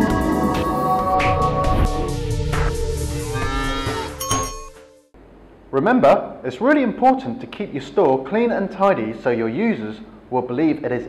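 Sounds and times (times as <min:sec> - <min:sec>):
intro music: 0:00.0 - 0:05.1
cow mooing: 0:03.1 - 0:04.2.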